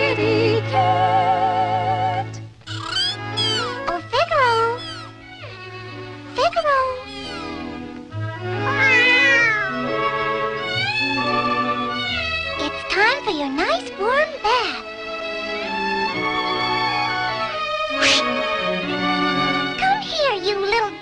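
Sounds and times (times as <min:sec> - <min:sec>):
orchestral cartoon music: 0:00.0 - 0:21.0
cartoon kitten meowing: 0:02.7 - 0:03.8, 0:07.0 - 0:07.7, 0:08.6 - 0:09.9, 0:10.7 - 0:11.2, 0:18.0 - 0:18.3.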